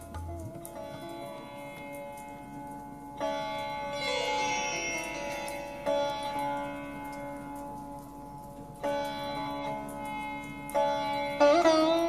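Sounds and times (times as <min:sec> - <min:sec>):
sitar note ringing: 0:00.0 - 0:12.0
slow sitar music: 0:00.0 - 0:12.0.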